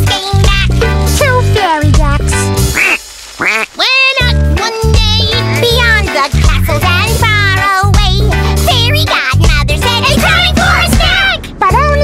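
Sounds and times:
bouncy children's song music: 0:00.0 - 0:12.0
cartoon duck quacks: 0:02.7 - 0:03.8.

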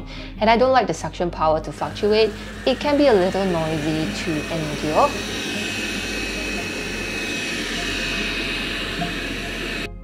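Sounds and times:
robot vacuum suction motor whine: 0:01.8 - 0:10.0.

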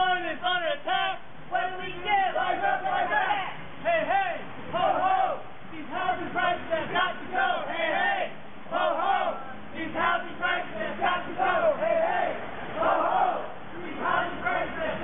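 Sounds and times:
crowd chanting slogans: 0:00.8 - 0:15.0.

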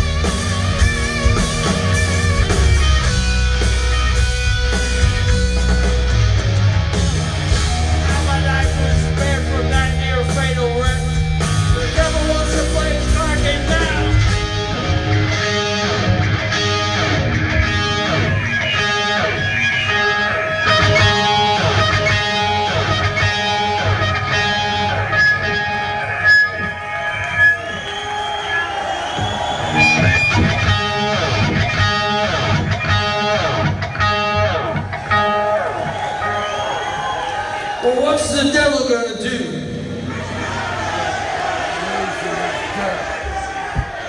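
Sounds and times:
lead guitar bending notes: 0:00.0 - 0:27.5, 0:29.6 - 0:35.7
rock band playing: 0:00.0 - 0:44.0.

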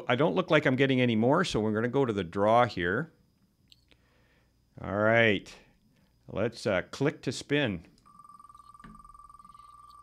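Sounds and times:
steady high tone: 0:08.0 - 0:10.0.

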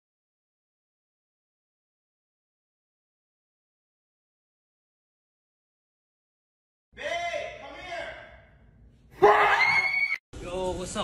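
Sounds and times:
woman screaming in fright: 0:09.2 - 0:10.2.

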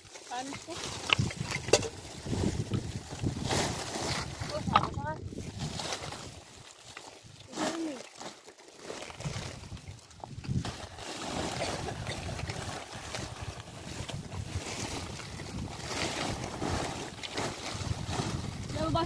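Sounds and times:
plastic tarp rustling and crinkling: 0:00.0 - 0:19.0.

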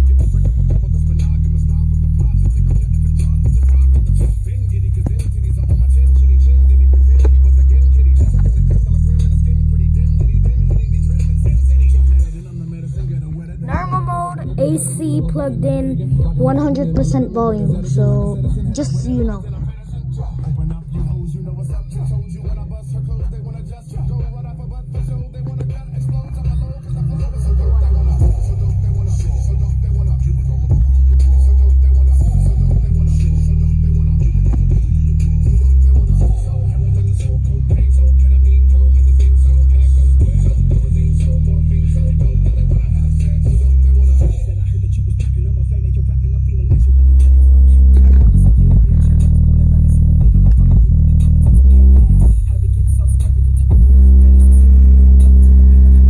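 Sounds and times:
deep bass notes from speaker: 0:00.0 - 0:12.4, 0:13.6 - 0:21.2, 0:25.0 - 0:56.0.

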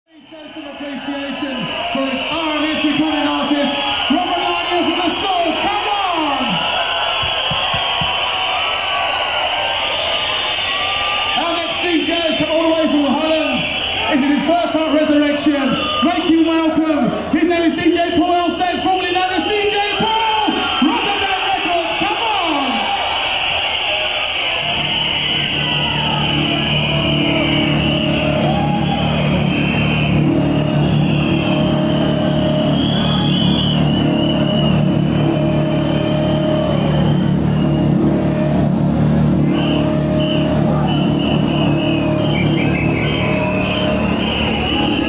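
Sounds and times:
loud hardcore dance music: 0:10.3 - 0:45.0.

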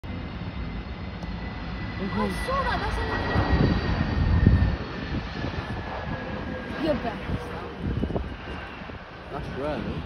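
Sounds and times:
jet airliner engine rumble: 0:00.0 - 0:10.0.

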